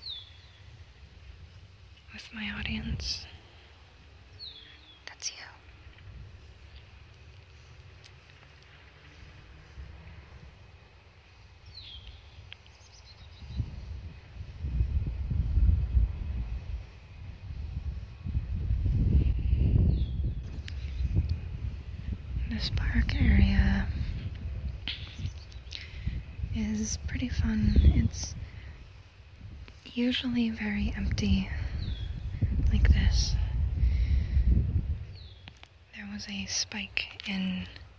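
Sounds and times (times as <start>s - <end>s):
wind buffeting microphone: 0.0s - 37.9s.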